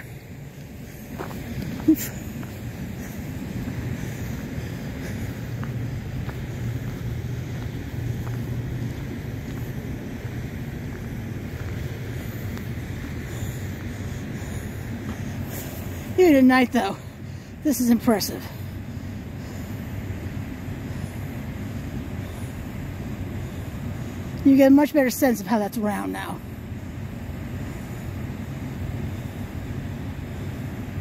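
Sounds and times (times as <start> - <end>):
low outdoor rumble: 0.0 - 31.0.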